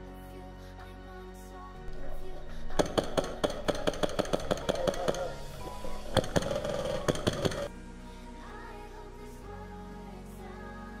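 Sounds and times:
background music: 0.0s - 11.0s
airsoft rifle shots: 1.9s - 7.7s.

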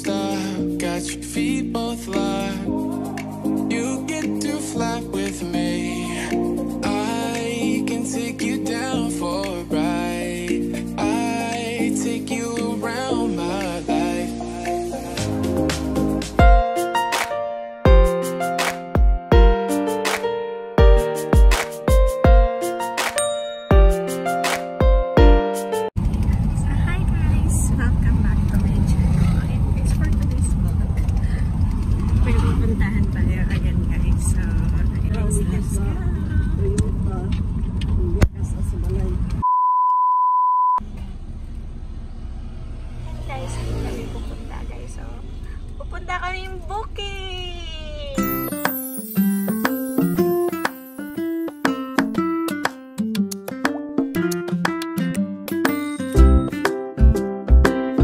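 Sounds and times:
music with keyboard melody: 0.0s - 26.0s, 48.2s - 58.0s
car road rumble inside cabin: 26.0s - 39.4s
test tone beep: 39.4s - 40.8s.

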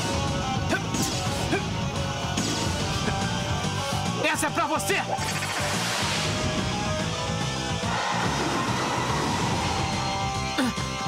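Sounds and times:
rock music: 0.0s - 11.0s.

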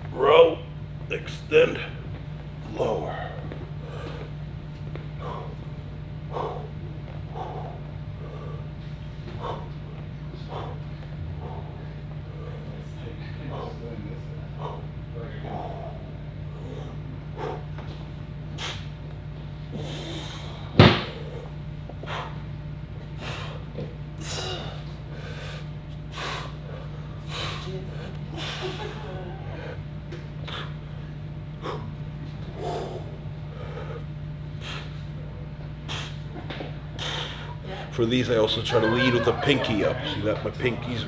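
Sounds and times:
steady low hum: 0.0s - 41.0s
man breathing hard: 3.0s - 4.4s, 5.1s - 17.9s, 18.5s - 18.9s, 19.6s - 22.5s, 23.2s - 36.3s, 37.0s - 37.8s.

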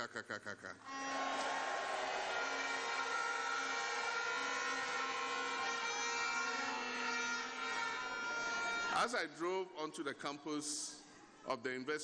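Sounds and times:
held horn-like tones: 0.8s - 9.2s
crowd cheering: 0.9s - 9.1s.

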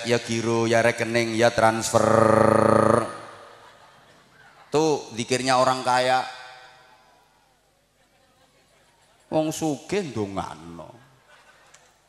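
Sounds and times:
man chanting a long vowel: 1.7s - 3.3s.

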